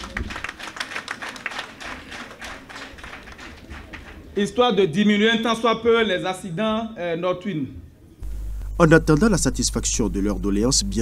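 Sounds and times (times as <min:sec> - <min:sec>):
audience clapping: 0:00.0 - 0:04.4.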